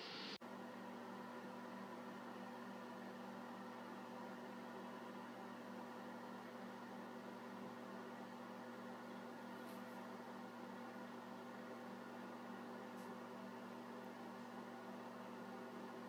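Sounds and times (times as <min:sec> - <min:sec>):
even hiss: 0:00.0 - 0:00.4
faint steady hum: 0:00.0 - 0:16.0.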